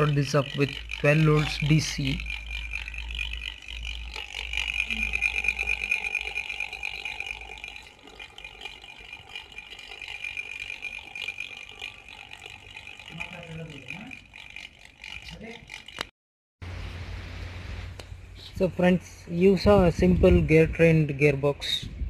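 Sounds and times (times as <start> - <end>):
motor and gears whining: 0.0 - 16.1.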